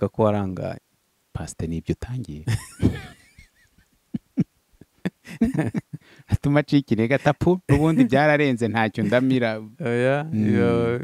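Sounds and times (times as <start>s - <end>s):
man talking: 0.0s - 0.8s, 1.4s - 3.2s, 5.1s - 11.0s
man laughing: 2.5s - 6.1s, 7.2s - 8.2s, 9.0s - 9.4s.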